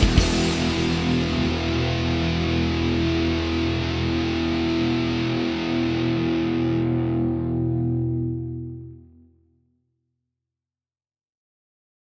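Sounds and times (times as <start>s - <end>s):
bass guitar ringing: 0.0s - 9.2s
distorted electric guitars: 0.0s - 9.2s.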